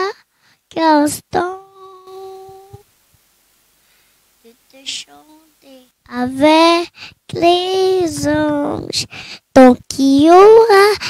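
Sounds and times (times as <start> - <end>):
girl singing a cappella: 0.0 - 2.9, 4.4 - 11.0.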